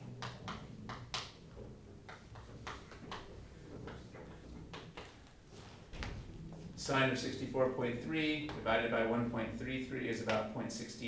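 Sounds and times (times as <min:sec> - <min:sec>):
chalk tapping on chalkboard: 0:02.0 - 0:05.3.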